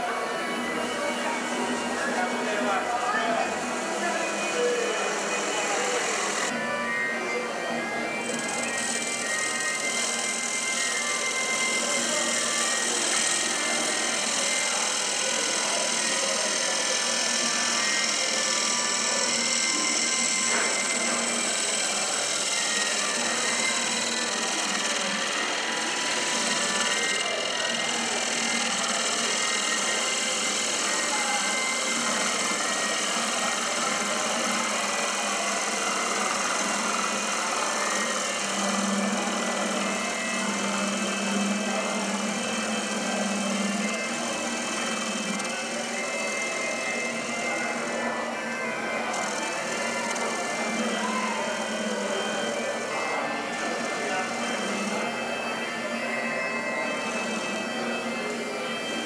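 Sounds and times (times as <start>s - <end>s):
lathe motor hum: 0.0s - 59.0s
gouge cutting spinning wood: 0.6s - 6.6s, 8.0s - 55.7s.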